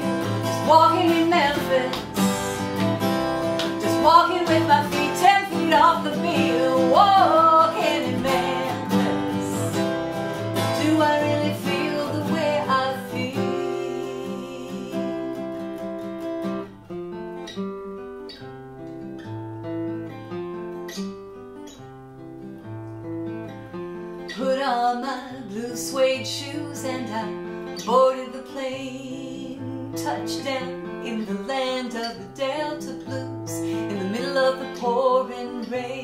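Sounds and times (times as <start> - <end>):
woman singing: 0.0 - 15.9, 24.3 - 36.0
acoustic guitar: 0.0 - 36.0.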